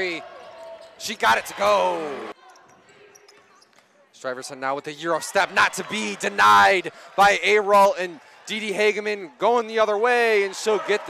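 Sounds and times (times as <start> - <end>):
light taps and squeaks: 2.5 - 4.0
commentator speaking: 4.2 - 11.0.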